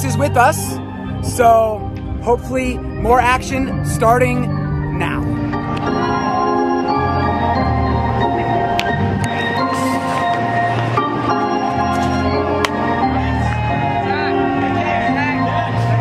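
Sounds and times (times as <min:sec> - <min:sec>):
bass line: 0:00.0 - 0:16.0
organ-like chords: 0:00.0 - 0:16.0.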